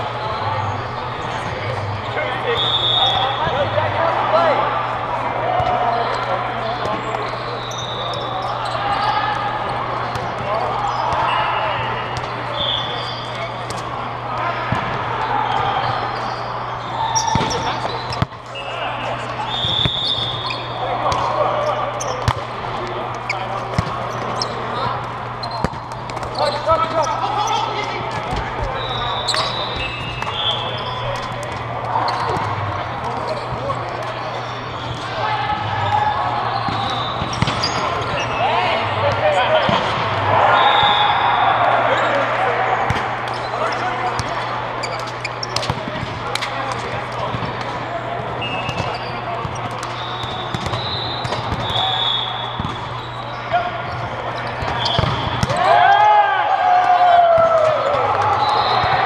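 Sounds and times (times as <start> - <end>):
indistinct chatter: 0.0 - 59.0
players shouting: 0.0 - 59.0
volleyball hits and bounces: 17.2 - 18.5, 22.0 - 27.0, 27.8 - 34.0, 36.6 - 38.4, 39.1 - 41.1, 42.8 - 53.0, 53.8 - 55.9.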